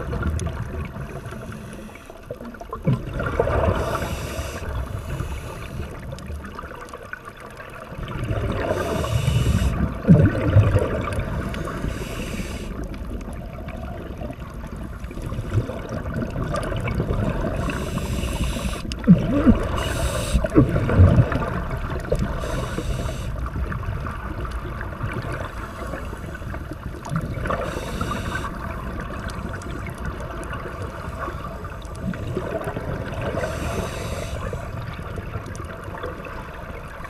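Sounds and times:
exhaled bubbles gurgling underwater: 0:00.0 - 0:37.0
scuba regulator hiss: 0:03.8 - 0:05.8, 0:08.6 - 0:09.8, 0:11.5 - 0:12.8, 0:17.6 - 0:18.9, 0:19.7 - 0:20.5, 0:22.3 - 0:23.4, 0:27.5 - 0:28.6, 0:33.4 - 0:34.6.

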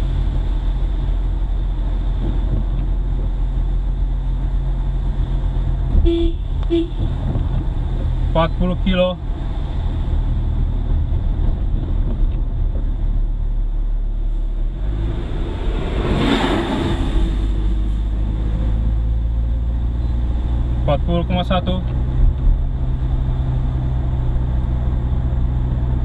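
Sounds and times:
car engine and tyre rumble: 0:00.0 - 0:26.0
truck passing: 0:09.2 - 0:21.1.

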